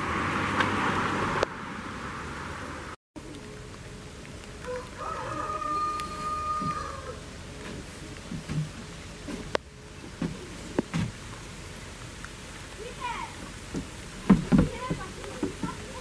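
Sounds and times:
rooster crowing: 4.6s - 7.2s
rustling noise: 6.1s - 11.9s
sharp knocks: 13.8s - 15.8s.

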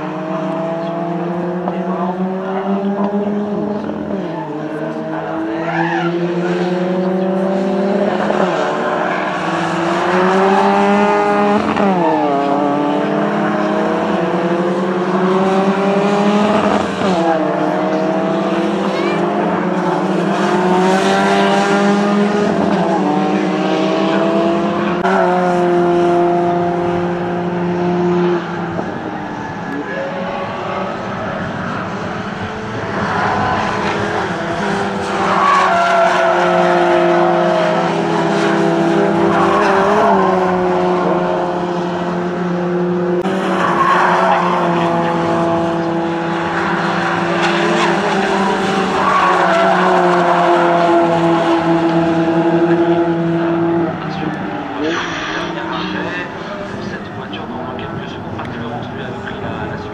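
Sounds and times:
race car engines passing: 0.0s - 59.9s.

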